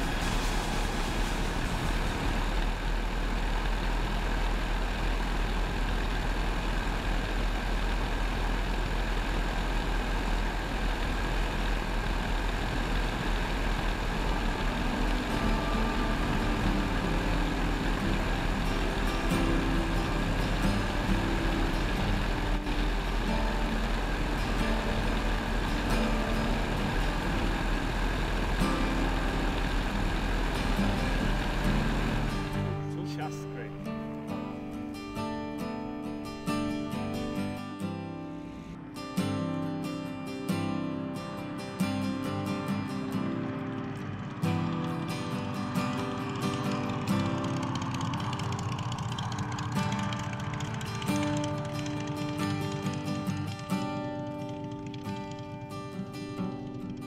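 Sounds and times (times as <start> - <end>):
biplane engine in flight: 0.0 - 57.0
music with sustained low notes: 0.0 - 57.0.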